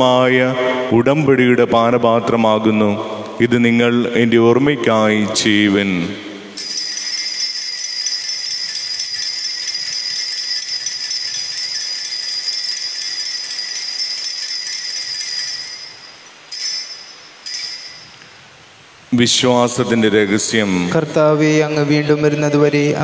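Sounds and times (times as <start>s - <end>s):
cluster of bells ringing: 6.5s - 20.9s.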